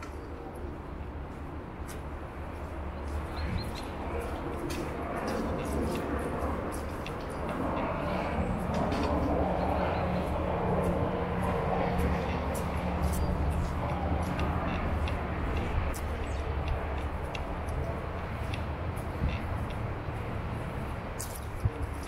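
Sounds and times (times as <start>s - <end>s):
distant traffic rumble: 0.0s - 22.0s
footsteps on asphalt: 1.1s - 22.0s.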